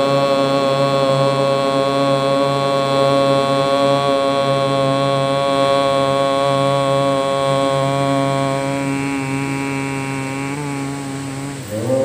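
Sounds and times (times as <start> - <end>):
man chanting through loudspeaker: 0.0 - 12.0.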